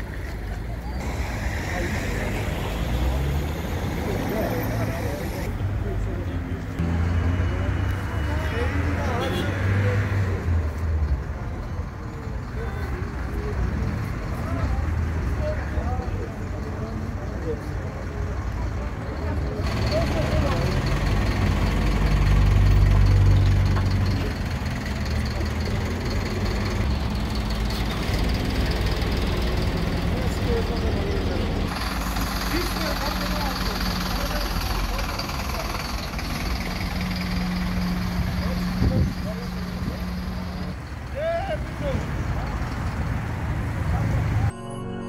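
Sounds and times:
scattered voices: 0.0 - 6.8, 23.7 - 44.5
low rumble of traffic: 0.0 - 44.6.

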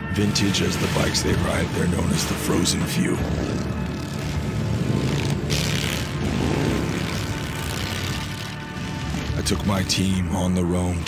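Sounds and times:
vehicle engine low drone: 0.0 - 11.0.

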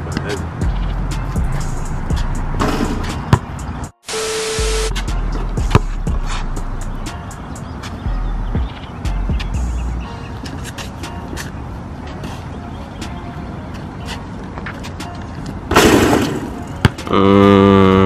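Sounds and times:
background music with deep bass: 0.0 - 15.5
basketball bouncing on asphalt: 2.1 - 3.6, 5.1 - 6.4, 16.2 - 17.1
loud rush of noise: 3.8 - 5.1
loud steady pitched tone: 4.0 - 7.2.

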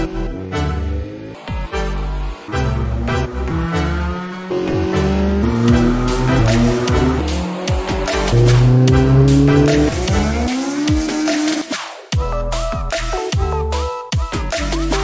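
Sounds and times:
race car engine revving: 0.0 - 11.8
background music: 0.0 - 15.0.

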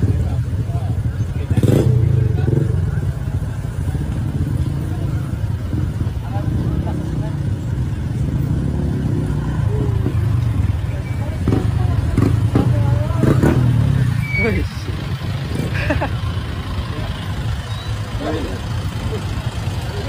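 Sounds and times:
motorcycle engines idling: 0.0 - 20.0
voices: 0.0 - 20.0.

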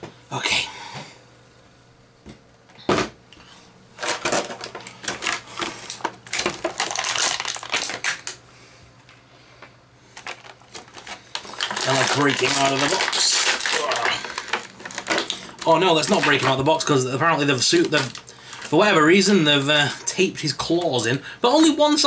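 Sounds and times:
packaging crinkling and rustling: 4.0 - 8.4, 10.1 - 19.9.

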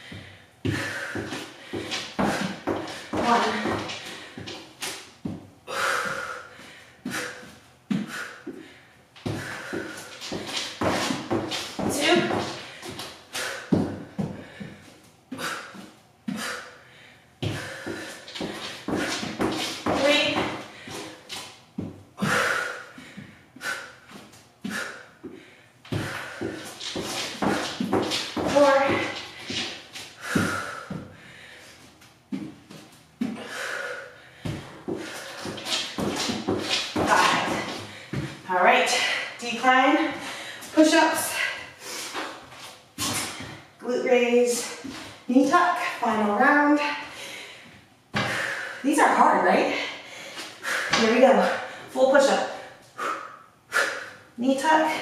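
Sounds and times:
woman breathing heavily: 0.0 - 43.8, 44.5 - 55.0.

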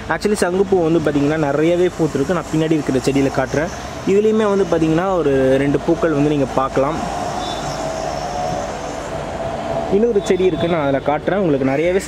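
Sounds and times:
rushing mechanical noise: 0.0 - 11.5.

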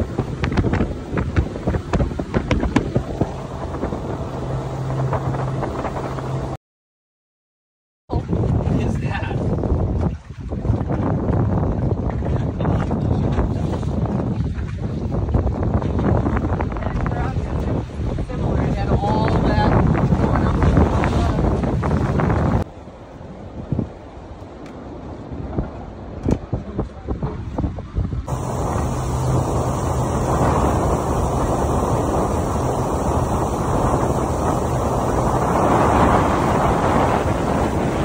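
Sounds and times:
boat engine hum: 0.0 - 6.6, 28.3 - 38.0
wind buffeting microphone: 0.0 - 6.6, 8.1 - 22.7, 25.0 - 38.0.

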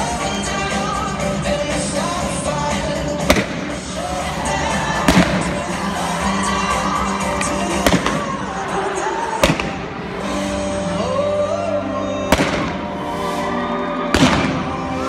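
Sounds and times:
loud background music: 0.0 - 15.0
balloons bursting with sharp bangs: 3.2 - 3.9, 5.0 - 5.7, 7.8 - 8.4, 9.4 - 10.4, 12.3 - 13.0, 14.1 - 14.9.

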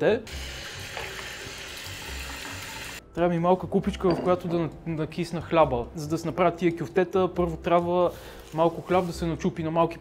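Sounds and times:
water running from a tap: 0.3 - 3.0.

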